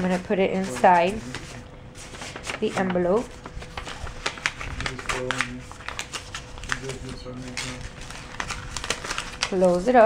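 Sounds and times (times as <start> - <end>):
paper and plastic packaging rustling: 0.0 - 10.0.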